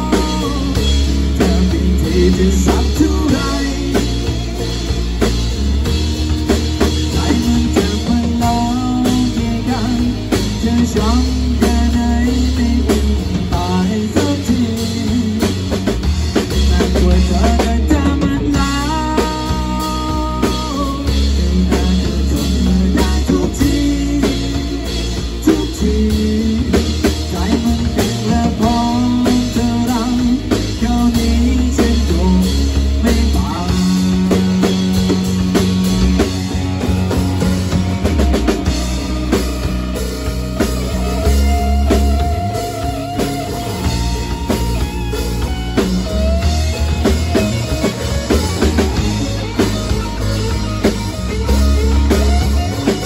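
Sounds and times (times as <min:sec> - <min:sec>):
person singing: 0:00.0 - 0:05.0, 0:07.0 - 0:36.9
rock band playing live: 0:00.0 - 0:53.0.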